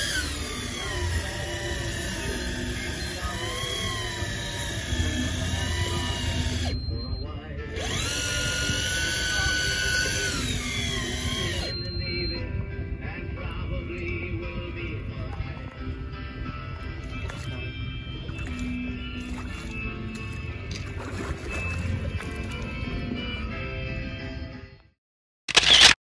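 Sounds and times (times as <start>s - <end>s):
electric fishing reel motor whining: 0.0s - 7.0s, 7.8s - 12.3s.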